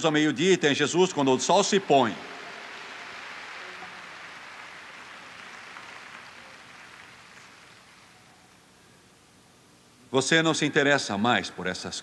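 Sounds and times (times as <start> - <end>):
congregation applauding: 1.2 - 8.5.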